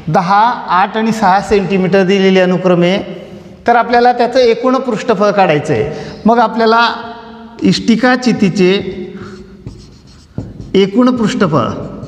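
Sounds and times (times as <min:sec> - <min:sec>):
marker pen writing on whiteboard: 0:08.2 - 0:12.0.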